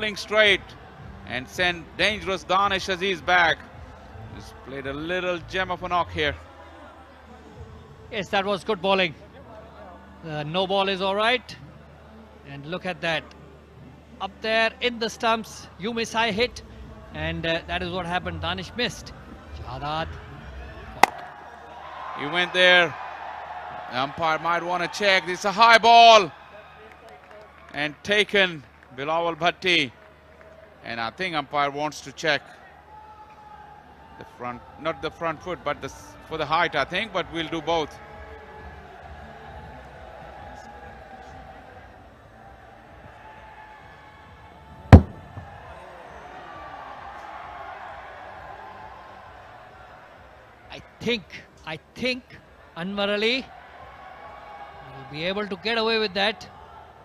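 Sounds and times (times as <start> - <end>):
faint crowd murmur: 9.1 - 10.3
cricket bat striking ball: 21.0 - 21.3, 44.9 - 45.5.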